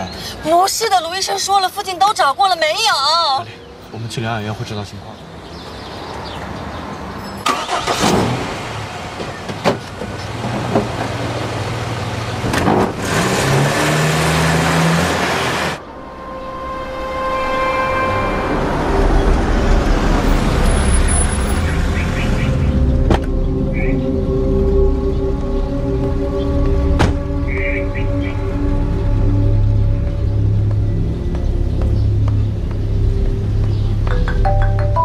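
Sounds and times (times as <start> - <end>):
car engine and road noise: 0.0 - 35.0.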